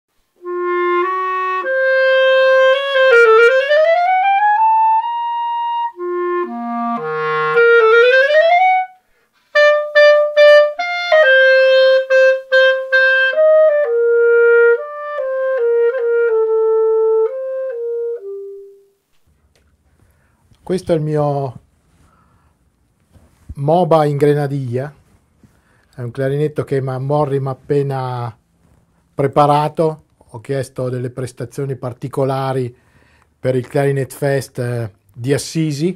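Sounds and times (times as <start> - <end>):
solo clarinet: 0.4 - 19.0.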